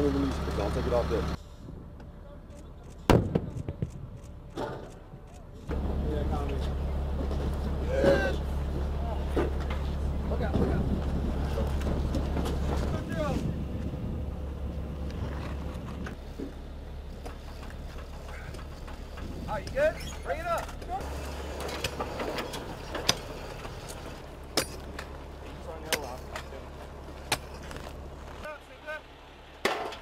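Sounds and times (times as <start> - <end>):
steady low rumble: 0.0 - 28.5.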